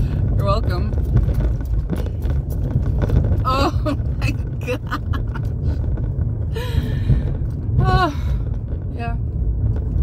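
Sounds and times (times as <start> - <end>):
tyres rumbling over cobblestones: 0.0 - 10.0
small knocks and rattles: 0.7 - 6.4.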